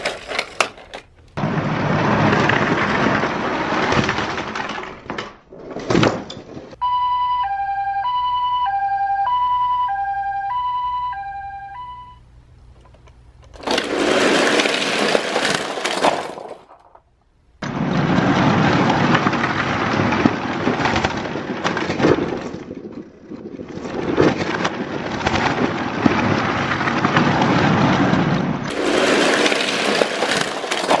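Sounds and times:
toy cars clattering down wooden ramp: 0:00.0 - 0:06.8, 0:12.9 - 0:17.1, 0:17.8 - 0:31.0
two-tone hi-lo siren: 0:06.8 - 0:12.2.

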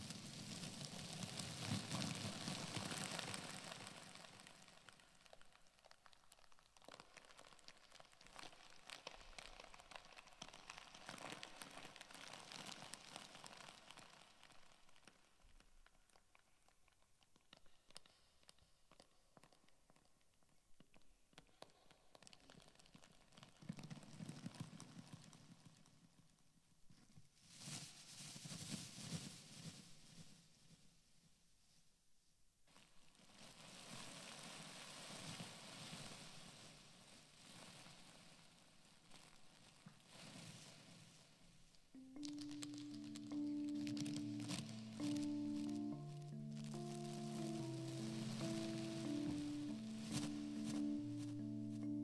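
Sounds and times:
plastic bag crinkling: 0:42.0 - 0:52.0.

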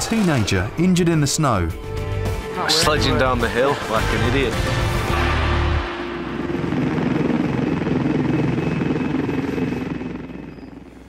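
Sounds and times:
helicopter rotor blades chopping: 0:02.8 - 0:11.0.

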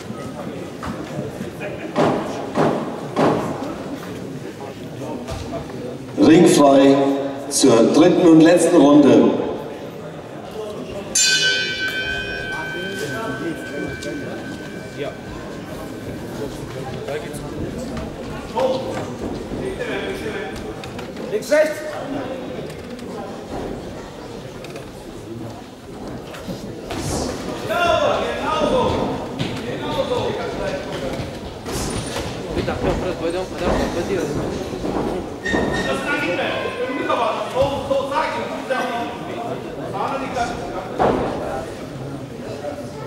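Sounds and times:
crowd din: 0:00.0 - 0:43.0
boxing ring bell ringing: 0:11.1 - 0:16.7.

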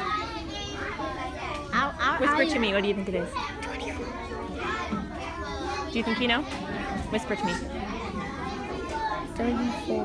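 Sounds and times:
children talking quietly: 0:00.0 - 0:10.0.

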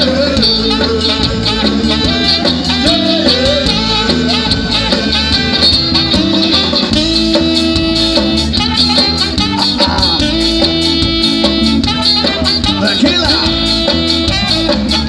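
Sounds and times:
live ska-punk band instrumental: 0:00.0 - 0:15.0.

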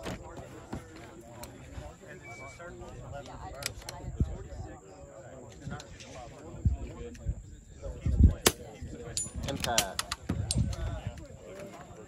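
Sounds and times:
quiet talk: 0:00.0 - 0:12.0.

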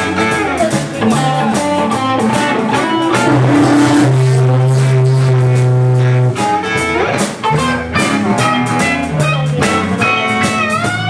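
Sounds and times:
blues band holding a chord: 0:01.0 - 0:07.1.

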